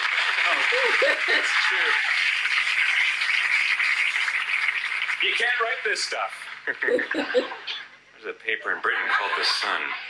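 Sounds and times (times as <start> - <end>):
audience applauding: 0.0 - 7.4.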